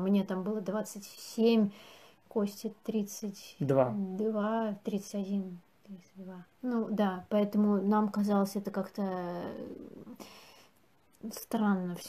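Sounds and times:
breath noise: 1.7s - 2.3s, 10.1s - 10.8s.

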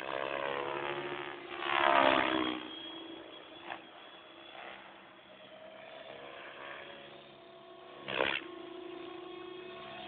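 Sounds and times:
model helicopter motor whine: 0.0s - 10.0s.

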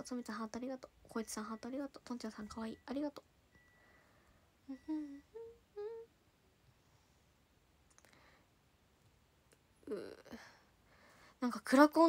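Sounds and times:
woman humming: 4.6s - 6.2s, 9.8s - 10.6s.

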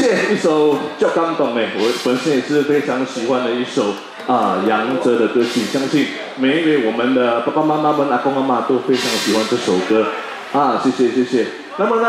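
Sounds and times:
man talking through pa system: 0.0s - 12.0s.

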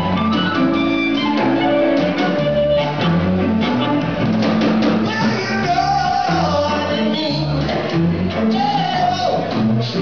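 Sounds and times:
amplified harmonica: 0.0s - 4.3s
blues band playing: 0.0s - 10.0s.

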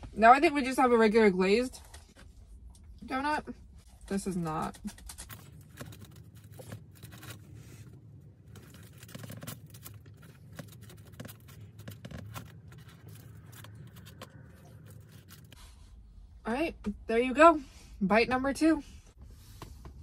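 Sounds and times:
plastic cutlery scraping: 8.5s - 15.6s.

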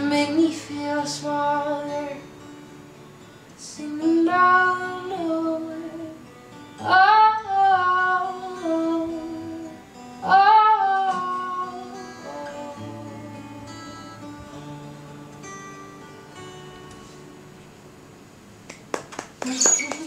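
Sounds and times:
woman singing: 0.0s - 2.3s, 3.6s - 15.6s, 19.4s - 20.0s
acoustic guitar: 0.0s - 20.0s.

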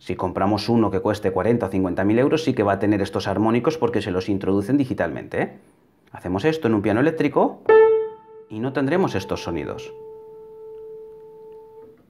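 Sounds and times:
piano string ringing: 7.7s - 12.0s.

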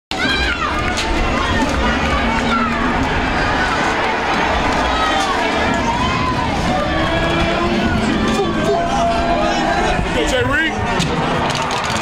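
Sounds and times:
din of crowd voices: 0.1s - 12.0s
fans shouting and cheering: 0.1s - 12.0s.

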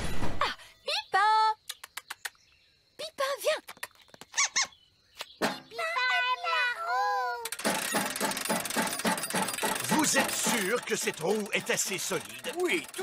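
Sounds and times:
high wavering cartoon squeaks: 4.2s - 4.8s
metal wheel rattling clatter: 7.5s - 13.0s.

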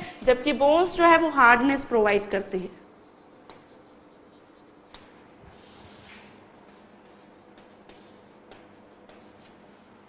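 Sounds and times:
chalk scratching on blackboard: 2.7s - 9.8s
chalk tapping: 2.9s - 10.0s.

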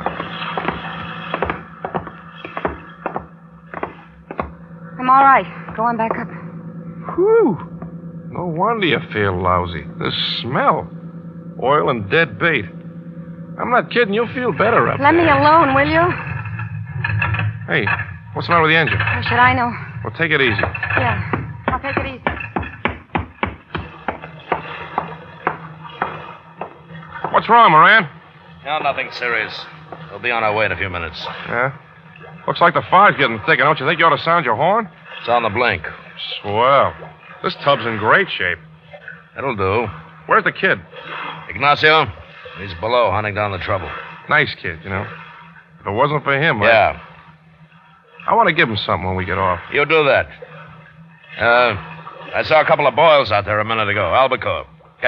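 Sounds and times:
footsteps down wooden steps: 0.0s - 4.6s, 20.6s - 27.4s
boat motor knocking and stalling: 0.0s - 55.0s
steady low hum: 0.0s - 55.0s.

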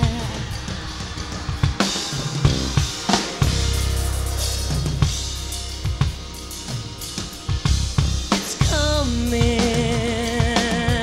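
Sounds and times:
drum kit hits: 0.0s - 11.0s
low held bass notes: 2.4s - 10.4s.

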